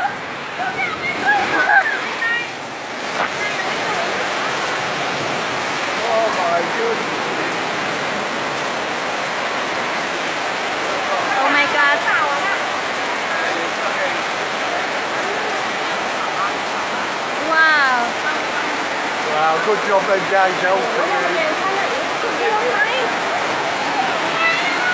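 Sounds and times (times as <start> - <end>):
floodwater rushing across street: 0.0 - 24.9.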